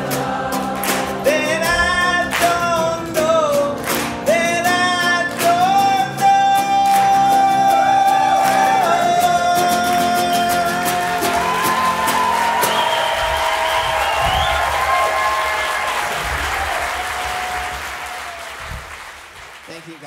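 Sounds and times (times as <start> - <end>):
audience applause and cheering: 0.0 - 2.9, 6.6 - 20.0
acoustic guitar playing: 0.0 - 16.4.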